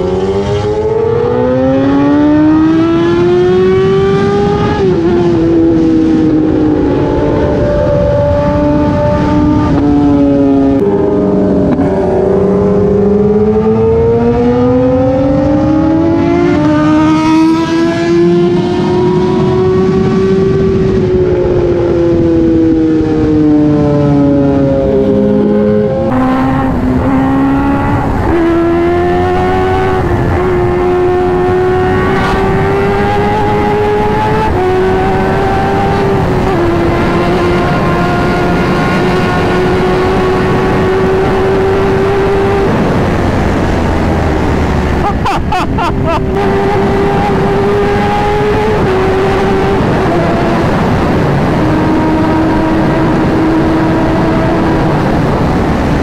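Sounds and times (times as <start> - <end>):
motorcycle engine at speed: 0.0 - 56.0
wind noise on microphone: 0.0 - 56.0.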